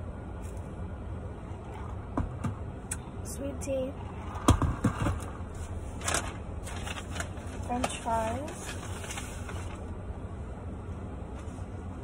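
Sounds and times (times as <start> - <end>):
car cabin hum: 0.0 - 12.0
paper packaging crinkling: 5.9 - 9.9.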